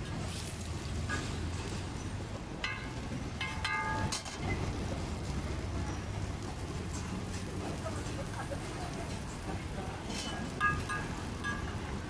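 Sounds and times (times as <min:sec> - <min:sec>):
street traffic rumble: 0:00.0 - 0:12.0
spatula tapping griddle: 0:02.6 - 0:04.4
metal spatula clinking on griddle: 0:02.6 - 0:04.6, 0:10.1 - 0:11.9.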